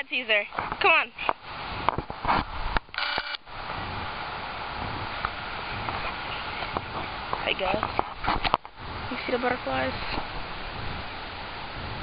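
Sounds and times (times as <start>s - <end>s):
steady hiss: 0.0s - 12.0s
zoom motor whine: 3.0s - 3.4s.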